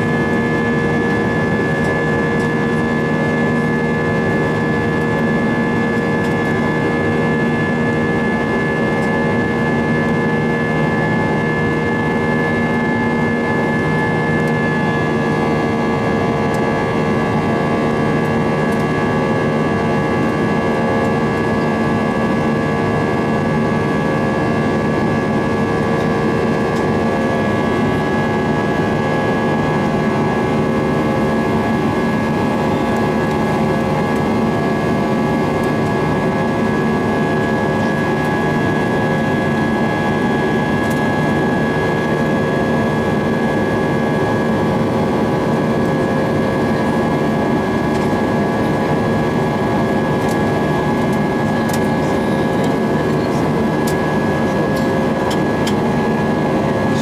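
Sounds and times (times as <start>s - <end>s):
airplane cabin engine rush: 0.0s - 57.0s
high engine whine: 0.0s - 57.0s.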